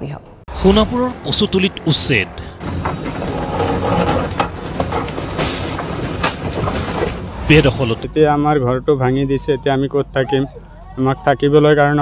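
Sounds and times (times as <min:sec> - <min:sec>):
concrete breaking and crashing: 0:02.6 - 0:08.0.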